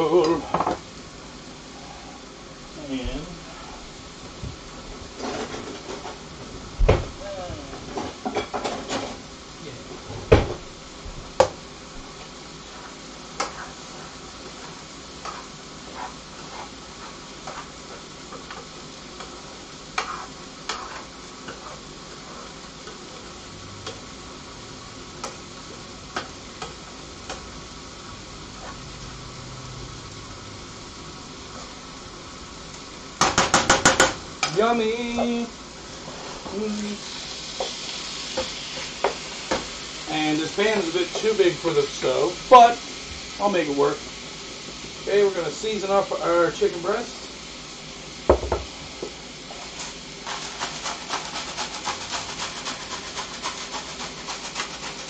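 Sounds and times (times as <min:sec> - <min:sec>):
vegetables sizzling in a pan: 0:00.0 - 0:55.0
utensils knocking against pan: 0:33.2 - 0:34.6.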